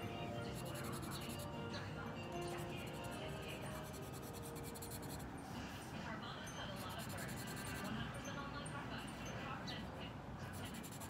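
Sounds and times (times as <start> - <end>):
marker scratching on paper: 0.5 - 1.5, 2.5 - 5.2, 6.8 - 7.9, 10.4 - 11.0.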